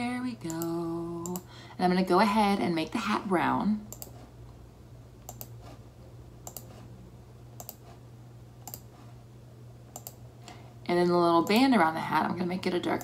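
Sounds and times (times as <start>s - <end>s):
computer mouse clicking: 3.9s - 4.2s, 5.2s - 5.6s, 6.4s - 6.8s, 7.6s - 7.9s, 8.6s - 8.9s, 9.9s - 10.2s.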